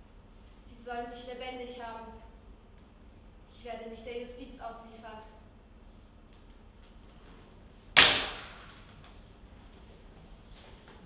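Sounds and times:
loud sharp bang: 0:08.0 - 0:08.7.

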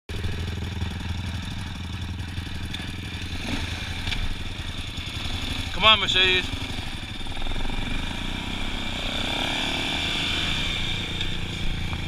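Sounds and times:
quad bike engines idling: 0:00.1 - 0:12.0.

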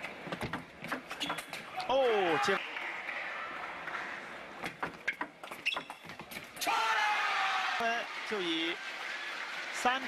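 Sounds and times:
crowd noise: 0:00.0 - 0:05.5, 0:06.4 - 0:10.0.

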